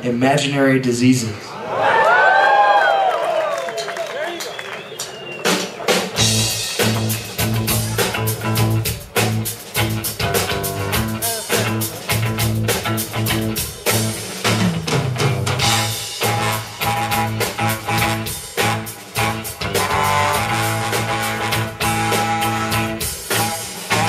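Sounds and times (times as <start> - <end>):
live rock band playing: 4.9 - 24.0
drum strokes: 5.0 - 24.0.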